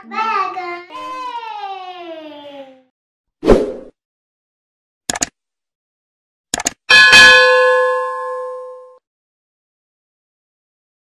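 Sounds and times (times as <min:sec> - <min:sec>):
notification bell ding: 0:06.9 - 0:09.0.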